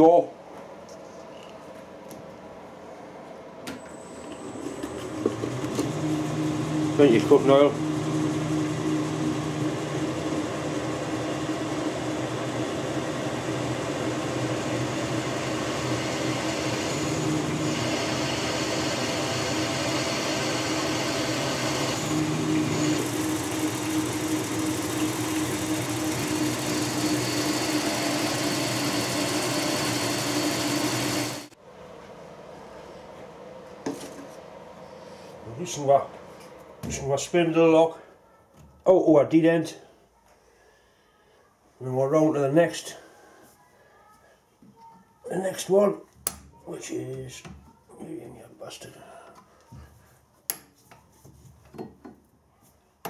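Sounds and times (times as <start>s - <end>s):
lathe spindle humming: 4.0s - 31.6s
drill bit cutting metal: 10.5s - 31.6s.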